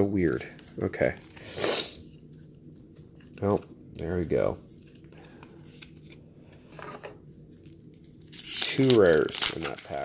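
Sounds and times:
faint card handling: 0.3 - 6.6
foil wrapper tearing open: 7.6 - 10.0.

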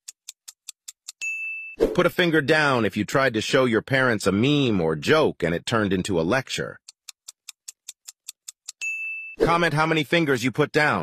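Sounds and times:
fast clock ticks: 0.0 - 1.3, 6.8 - 8.9
bright ding: 1.2 - 1.9, 8.8 - 9.4.

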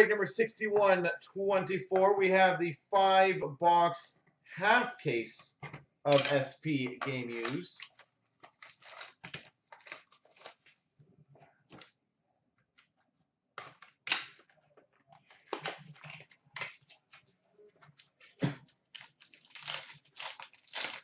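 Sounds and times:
packaging crinkling and rustling: 7.3 - 10.8, 17.8 - 21.0.

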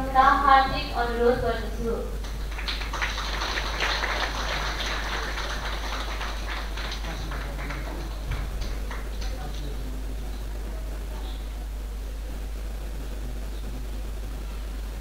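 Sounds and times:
audience applauding: 2.2 - 10.1.

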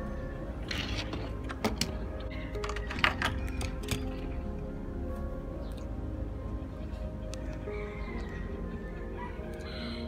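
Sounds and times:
background music: 0.0 - 10.0
toy trucks clicking and tapping: 0.6 - 4.3.

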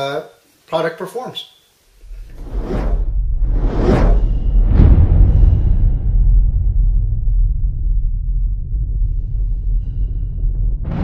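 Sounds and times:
deep steady rumble: 2.0 - 11.0
rising whoosh: 2.0 - 11.0.

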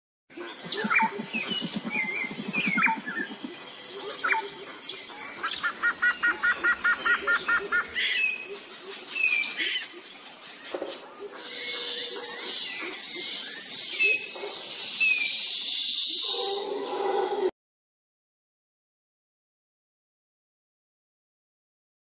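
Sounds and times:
birds chirping and calling: 0.3 - 17.5
high-pitched insect drone: 0.5 - 10.5
low rapid pulsing: 0.7 - 3.7.

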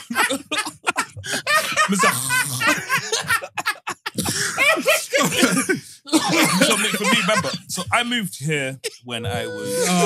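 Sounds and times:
men laughing: 0.0 - 8.2, 8.9 - 10.0.

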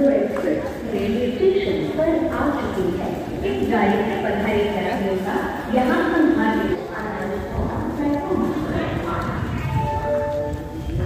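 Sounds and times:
people's voices: 0.0 - 11.0.

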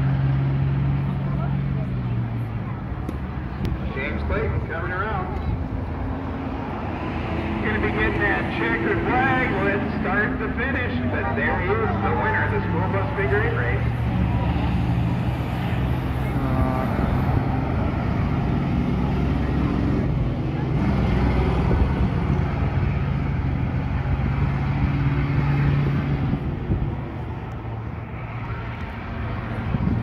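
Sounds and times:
bus engines humming: 0.0 - 30.0
crowd voices: 0.0 - 30.0.

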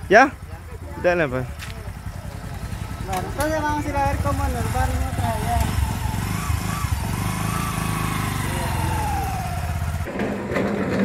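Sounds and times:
voices: 0.0 - 10.1
small motorcycle engine running: 0.0 - 11.0.

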